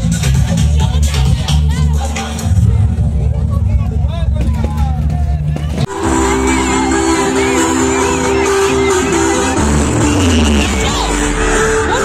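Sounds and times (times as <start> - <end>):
electronic dance music bass: 0.0 - 4.3, 5.9 - 12.0
people talking: 0.0 - 12.0.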